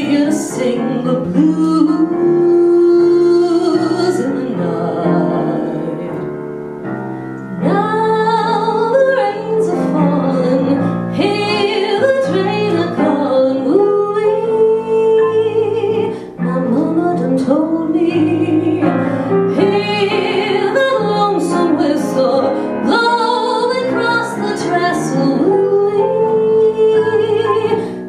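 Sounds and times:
woman singing into microphone: 0:00.0 - 0:06.3, 0:07.6 - 0:28.0
piano accompaniment: 0:00.0 - 0:28.0.

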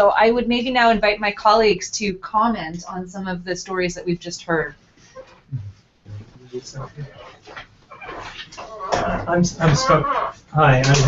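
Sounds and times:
man mumbling: 0:05.5 - 0:07.3, 0:08.9 - 0:11.0.

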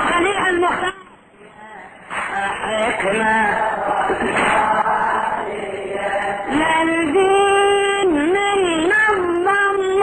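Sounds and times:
chanting voices: 0:01.4 - 0:10.0.

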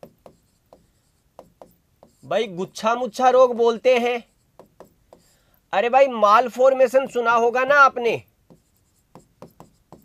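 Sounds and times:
pen strokes on a board: 0:00.0 - 0:05.4, 0:08.4 - 0:10.0.

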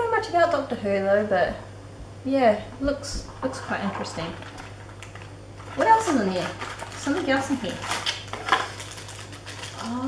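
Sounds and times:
plastic bag rustling: 0:03.4 - 0:10.0.

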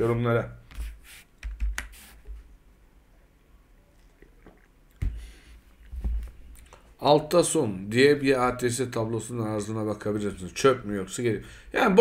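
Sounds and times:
keyboard and mouse clicks: 0:01.4 - 0:01.9.

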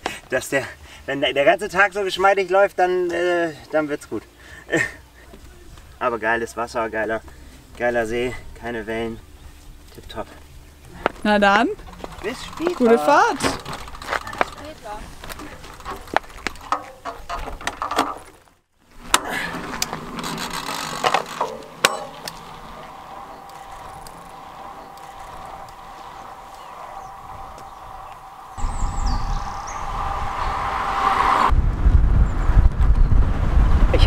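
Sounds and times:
bicycle clicks and ticks: 0:11.8 - 0:18.0, 0:19.2 - 0:26.7
wind rumble on microphone: 0:22.0 - 0:34.0.

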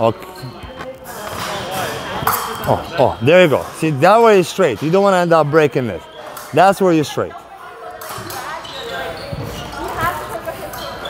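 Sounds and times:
background voices and chatter: 0:00.0 - 0:11.0.

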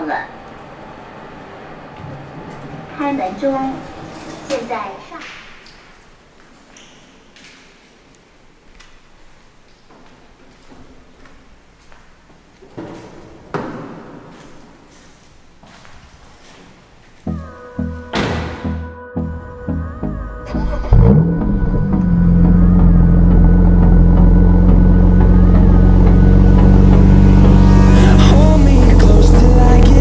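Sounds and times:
light footsteps: 0:04.1 - 0:17.4
music with steady beat: 0:17.3 - 0:20.5
car door opening and shutting: 0:18.1 - 0:18.8.

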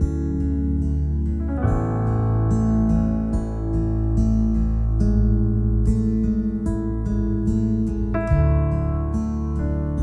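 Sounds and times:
guitar strumming: 0:00.0 - 0:10.0
sustained keyboard chords: 0:00.0 - 0:10.0.

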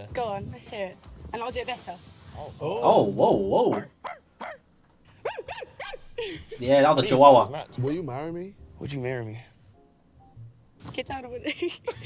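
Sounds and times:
person imitating dog barks: 0:02.9 - 0:04.6, 0:05.2 - 0:06.0.

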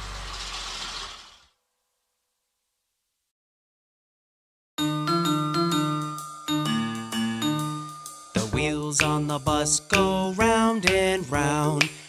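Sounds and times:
cartoon bus rattling rumble: 0:00.0 - 0:01.5.

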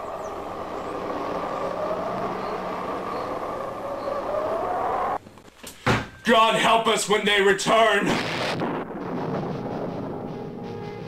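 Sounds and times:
flying saucer rushing drone: 0:00.0 - 0:05.2.

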